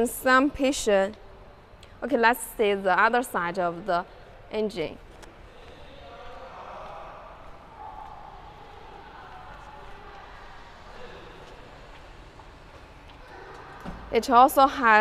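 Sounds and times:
distant indistinct voices: 5.4s - 14.2s.

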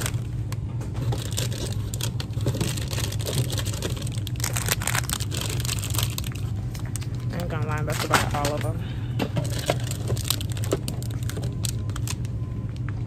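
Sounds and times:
plastic packaging crinkling: 0.0s - 8.7s, 9.4s - 12.8s
steady low hum: 0.0s - 13.0s.

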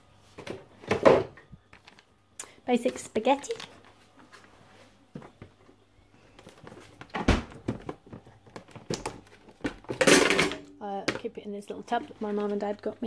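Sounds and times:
packet and tub handling: 1.7s - 2.1s.

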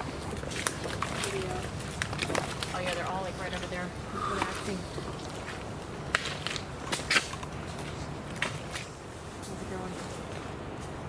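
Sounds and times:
twigs cracking and snapping: 0.0s - 8.9s.

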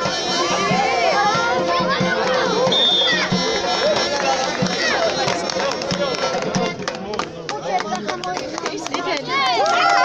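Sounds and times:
accordion and drum folk music: 0.0s - 9.2s
crowd voices and shouts: 0.0s - 10.0s
people clapping: 3.1s - 10.0s.

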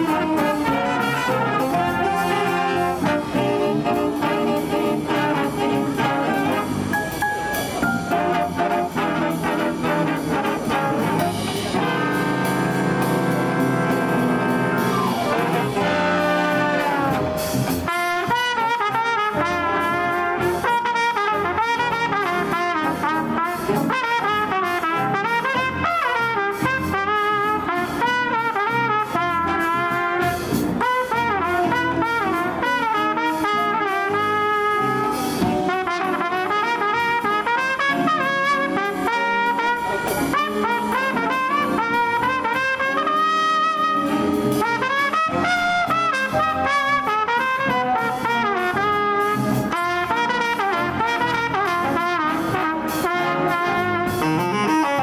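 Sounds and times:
jazz big band playing swing: 0.0s - 55.0s
trumpet solo: 0.0s - 55.0s.

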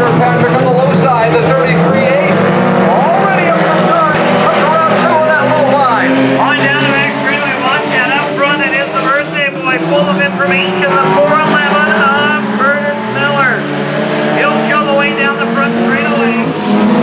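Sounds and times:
low engine drone: 0.0s - 17.0s
race car engines revving: 0.0s - 17.0s.

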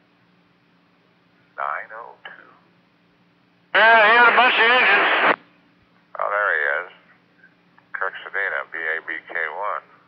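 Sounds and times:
faint steady hum: 0.0s - 10.0s
radio voice transmission: 3.8s - 5.4s, 8.0s - 9.9s.

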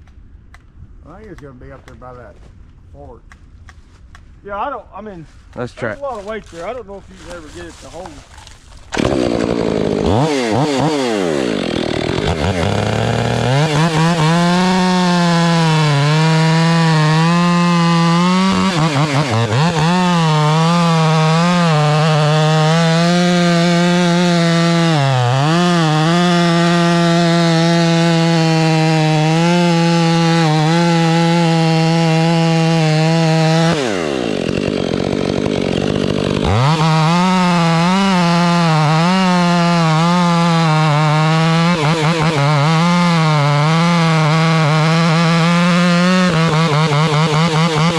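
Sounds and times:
chainsaw cutting wood at high revs: 6.6s - 47.9s.

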